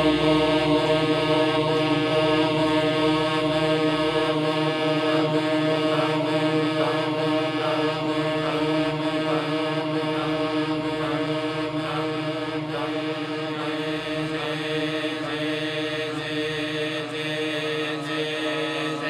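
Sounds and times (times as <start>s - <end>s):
drone of chant-like voices: 0.0s - 19.0s.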